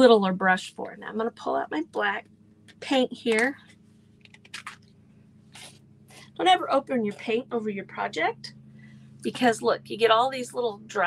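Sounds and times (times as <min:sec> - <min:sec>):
crunchy clicks of paint cap: 0:04.2 - 0:04.9.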